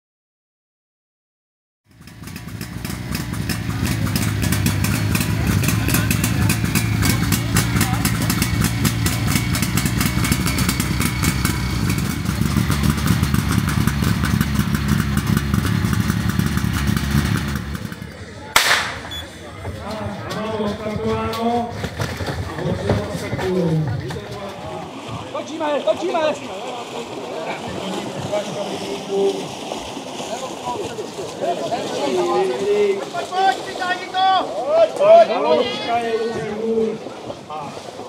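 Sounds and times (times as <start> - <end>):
pump engine running hard: 1.9 - 18.2
sharp crack: 16.6 - 19.2.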